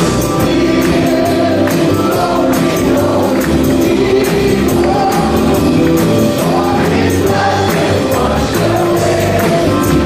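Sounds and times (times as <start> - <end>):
bass: 0.0 - 10.0
drums: 0.0 - 10.0
piano: 0.0 - 10.0
man and woman singing: 0.3 - 10.0.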